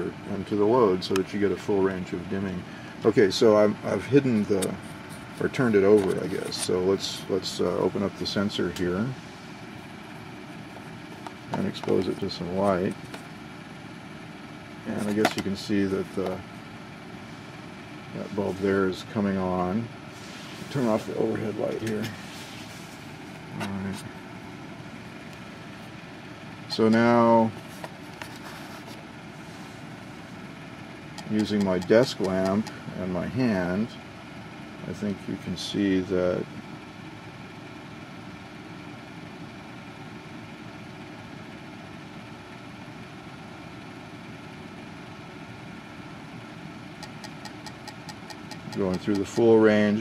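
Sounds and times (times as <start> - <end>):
faint hum: 0.0 - 50.0.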